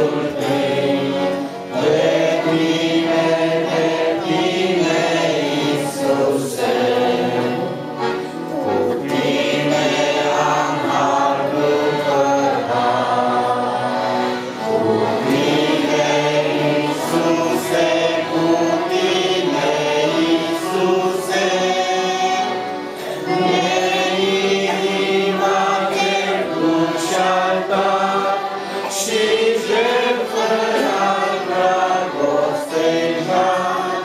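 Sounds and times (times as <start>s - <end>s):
group singing a christian song: 0.0s - 34.0s
musical accompaniment: 0.0s - 34.0s.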